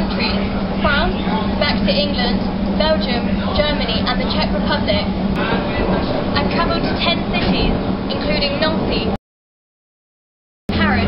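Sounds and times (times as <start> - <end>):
steady hum: 0.0 - 9.2, 10.7 - 11.0
train low rumble: 0.0 - 9.2, 10.7 - 11.0.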